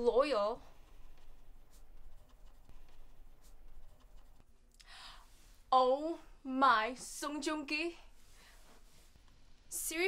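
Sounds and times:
pen scratching on paper: 0.8 - 4.5
short breath: 4.8 - 5.4.

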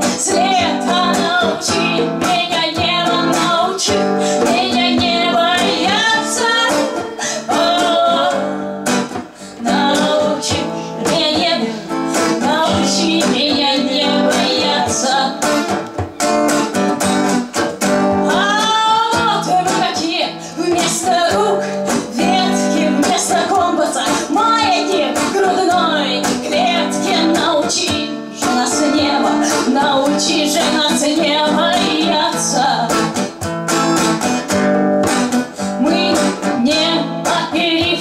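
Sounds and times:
woman singing: 0.0 - 16.3, 18.1 - 33.2, 35.6 - 38.0
hand drum: 0.0 - 38.0
strummed acoustic guitar: 0.0 - 38.0.

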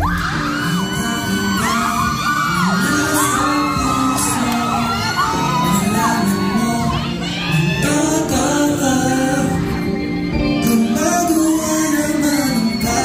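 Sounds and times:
fans screaming and cheering: 0.0 - 13.0
man singing pop song: 0.0 - 13.0.

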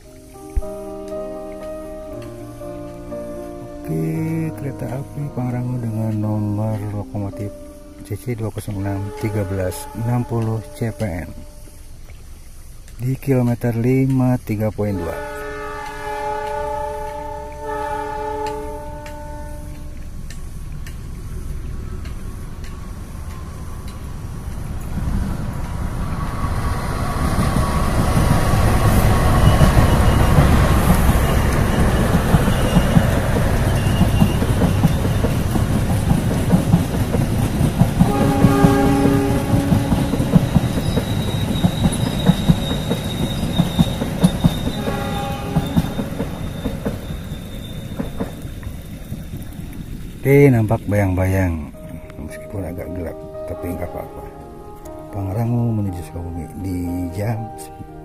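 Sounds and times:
train horn blast: 8.5 - 11.9, 14.9 - 20.2, 26.2 - 36.4, 37.2 - 48.2
wheels clacking over rail joints: 13.8 - 50.8
locomotive engine and wheel rumble: 15.0 - 50.3.

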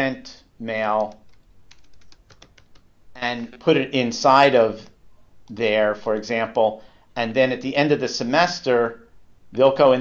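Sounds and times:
keyboard typing: 0.9 - 2.9.

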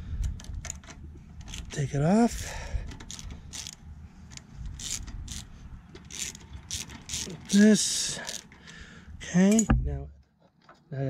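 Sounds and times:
socket ratchet clicking: 0.4 - 1.8, 2.9 - 7.6, 8.3 - 8.8.

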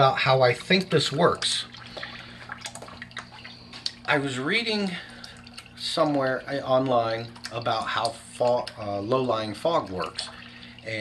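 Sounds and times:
pump humming: 0.0 - 11.0
water splashes: 0.0 - 11.0
water trickling and dripping: 0.0 - 11.0.

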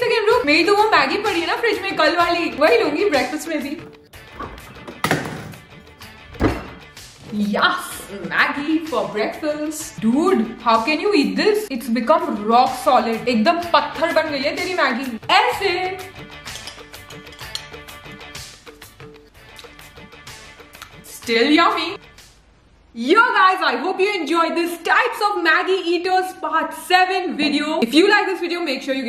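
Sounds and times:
background music: 0.0 - 29.0
sharp thunk: 4.4 - 5.6, 6.4 - 6.8
refrigerator door opening: 6.3 - 6.8.

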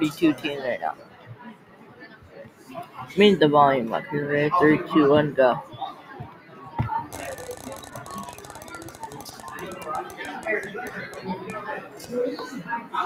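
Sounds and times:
spinning wheel ticking: 7.1 - 12.2.

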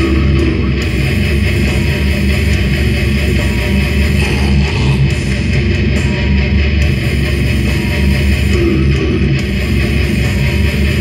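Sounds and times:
death metal band playing: 0.0 - 11.0.

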